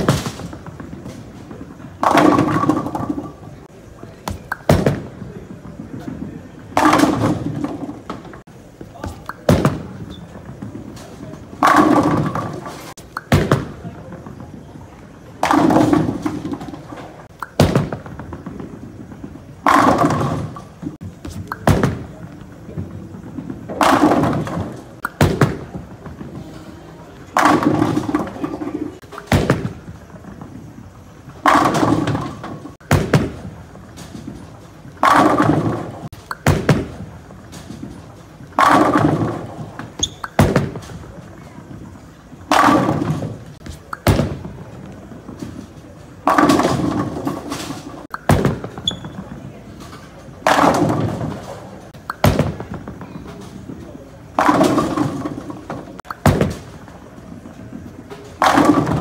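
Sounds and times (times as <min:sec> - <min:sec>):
bowling pins crashing: 0:00.0 - 0:03.7, 0:04.3 - 0:14.6, 0:15.4 - 0:59.0
bowling ball rolling: 0:00.0 - 0:59.0.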